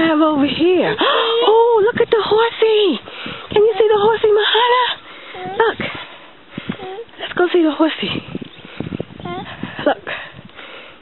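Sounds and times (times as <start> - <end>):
toddler making wordless vocal sounds: 5.4 - 5.8, 6.7 - 7.2, 9.2 - 9.6.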